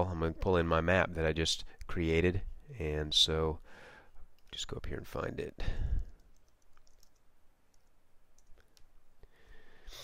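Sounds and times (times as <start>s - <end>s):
computer keyboard typing: 6.0s - 8.9s.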